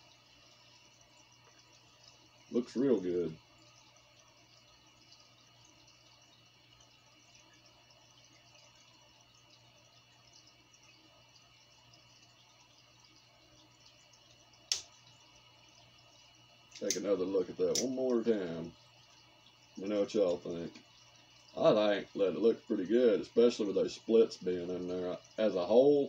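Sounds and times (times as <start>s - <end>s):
faint steady hum: 0.0s - 26.0s.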